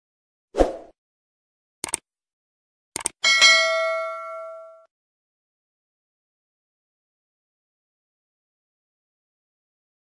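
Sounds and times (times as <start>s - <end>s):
double mouse click: 1.8s - 2.0s, 3.0s - 3.2s
notification bell ding: 3.2s - 4.9s.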